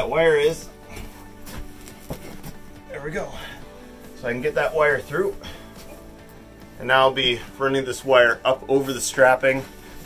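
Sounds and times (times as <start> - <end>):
quiet background music: 0.0 - 10.0
rustles and clicks in insulation: 0.0 - 10.0.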